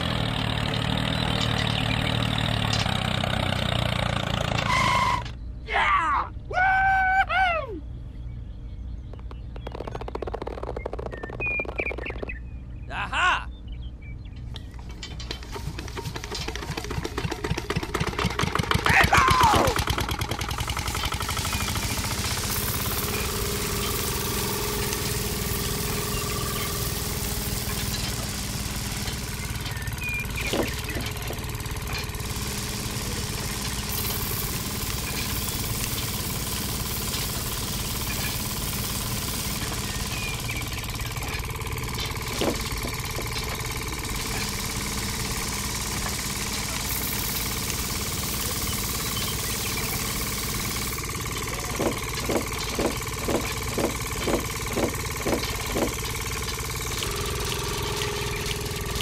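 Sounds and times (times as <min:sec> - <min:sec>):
small motor running: 0:00.0 - 0:05.4, 0:09.1 - 0:12.4, 0:14.5 - 0:59.0
regular knocks: 0:51.6 - 0:57.2.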